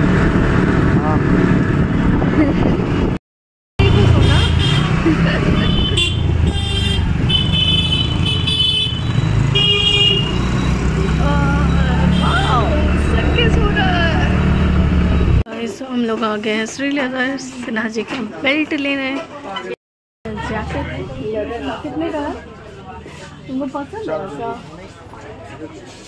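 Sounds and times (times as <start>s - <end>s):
motorbike engine and wind rumble: 0.0s - 3.2s, 3.8s - 15.4s
vehicle horn toots: 4.2s - 10.5s, 12.0s - 12.9s.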